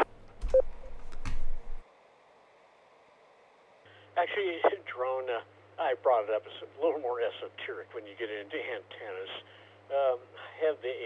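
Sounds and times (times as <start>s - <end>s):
steady low hum: 0.0s - 11.0s
low radio rush: 3.9s - 11.0s.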